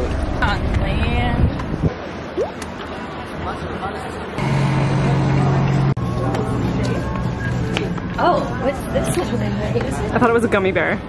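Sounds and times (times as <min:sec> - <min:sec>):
outdoor background noise: 0:00.0 - 0:11.0
engine running steadily: 0:04.4 - 0:07.9.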